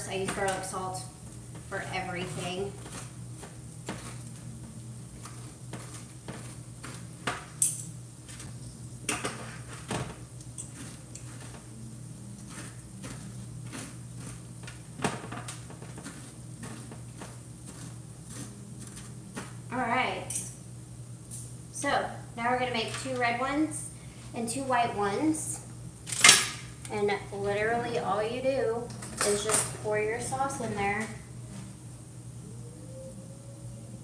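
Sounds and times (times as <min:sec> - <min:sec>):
steady low hum: 0:00.0 - 0:34.0
metal fork scraping and clinking: 0:10.6 - 0:11.4.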